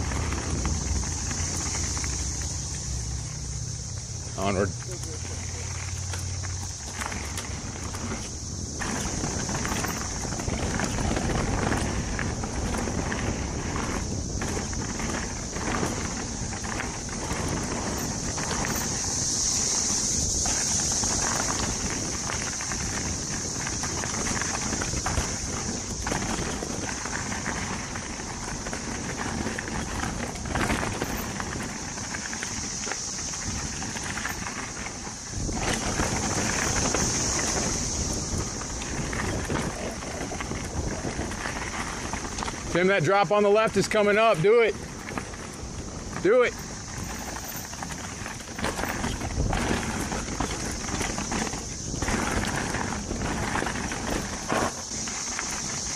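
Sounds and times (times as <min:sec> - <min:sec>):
bike rattling: 0:00.0 - 0:55.9
tyres rolling over dirt and rock: 0:00.0 - 0:55.9
wind on microphone: 0:06.2 - 0:42.9, 0:43.8 - 0:55.9.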